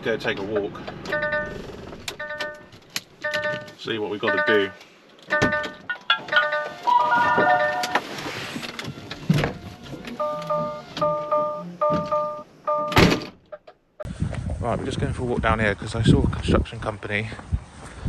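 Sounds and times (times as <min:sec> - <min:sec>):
electronic warning chime beeping: 0:02.2 - 0:08.0, 0:10.2 - 0:13.0
cab door shutting: 0:05.3 - 0:12.3.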